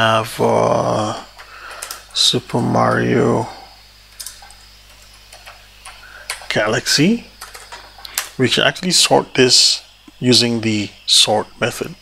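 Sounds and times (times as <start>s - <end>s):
faint steady hum: 0.0s - 12.0s
keyboard keys clicking: 4.1s - 6.5s, 7.4s - 8.3s.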